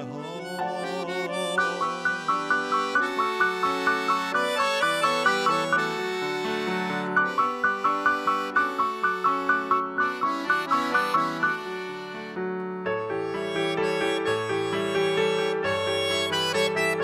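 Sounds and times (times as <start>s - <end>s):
accordion and keyboard playing: 0.0s - 17.0s.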